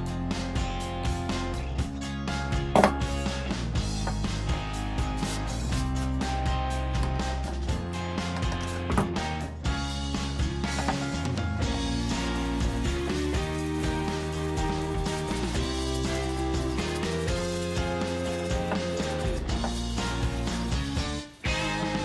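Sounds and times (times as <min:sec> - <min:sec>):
background music with steady beat: 0:00.0 - 0:22.0.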